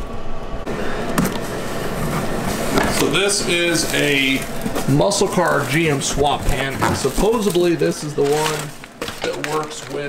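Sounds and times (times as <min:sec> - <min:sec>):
cardboard scraping and rustling: 0:01.2 - 0:10.0.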